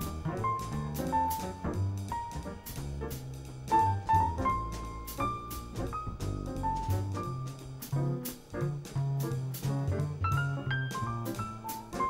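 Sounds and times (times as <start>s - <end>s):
double bass: 0.0s - 12.0s
piano melody: 0.0s - 12.0s.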